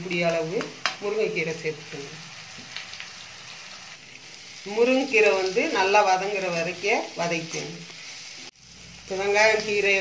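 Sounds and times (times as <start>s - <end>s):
leaves sizzling in hot oil: 0.0s - 10.0s.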